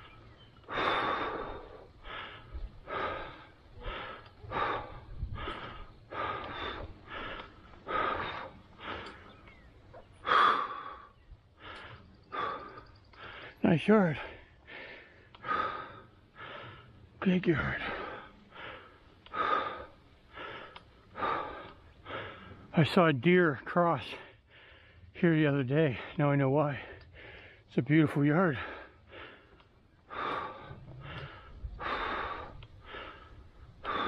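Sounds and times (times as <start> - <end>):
person breathing hard: 0.0 - 9.6, 10.2 - 22.7, 24.1 - 25.2, 25.9 - 27.7, 28.5 - 34.0.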